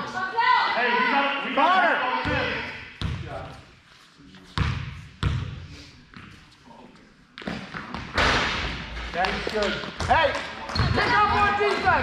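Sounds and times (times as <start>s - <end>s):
shouting or shoe squeaks: 10.6s - 11.3s.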